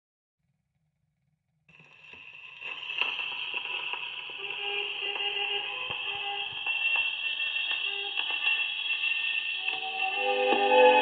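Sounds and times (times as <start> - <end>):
record surface hiss and crackle: 1.7 - 11.0.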